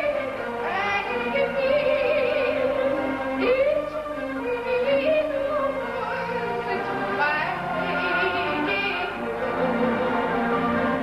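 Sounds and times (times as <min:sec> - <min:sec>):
woman singing operatically: 0:00.0 - 0:09.2.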